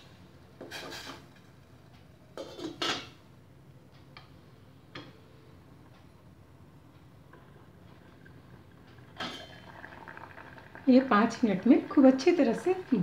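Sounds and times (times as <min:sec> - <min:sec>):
pot lid clattering on pot: 0:02.4 - 0:03.2.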